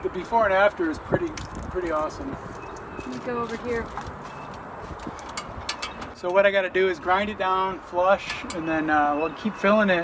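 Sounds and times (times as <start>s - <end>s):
footsteps outdoors: 0.0s - 9.6s.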